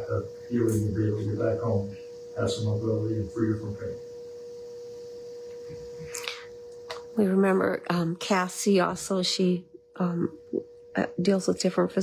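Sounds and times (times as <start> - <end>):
steady single-pitched hum: 0.0 - 12.0.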